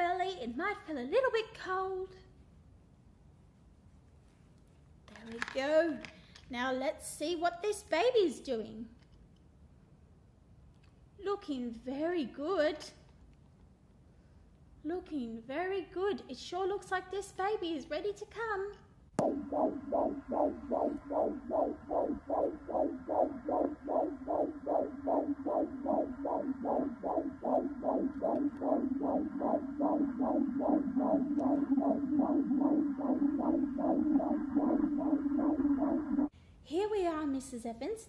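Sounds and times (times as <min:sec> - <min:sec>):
steady hum: 0:19.1 - 0:36.3
fetal heartbeat whooshing pulse: 0:19.2 - 0:36.3.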